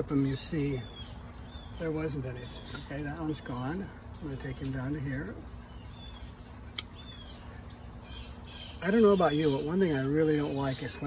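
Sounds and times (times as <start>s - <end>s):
pruning scissors snip: 6.8s - 7.0s.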